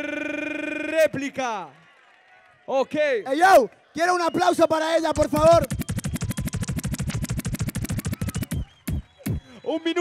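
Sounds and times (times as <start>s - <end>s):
drum roll over speakers: 5.2s - 9.5s.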